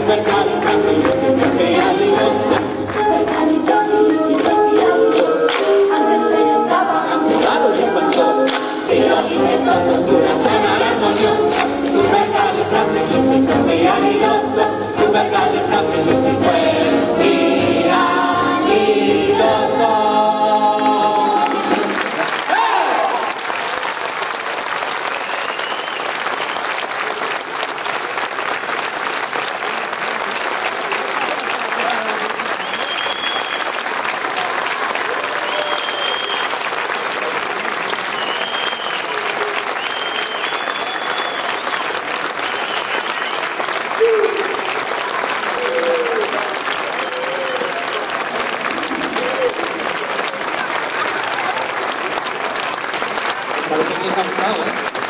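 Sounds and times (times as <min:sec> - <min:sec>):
audience applauding: 0:00.0 - 0:06.2, 0:20.7 - 0:55.0
high cheers or whistles: 0:22.3 - 0:23.4, 0:25.1 - 0:26.8, 0:32.4 - 0:33.8, 0:35.1 - 0:36.7, 0:37.9 - 0:44.6, 0:45.5 - 0:46.4
people shouting: 0:22.5 - 0:23.3.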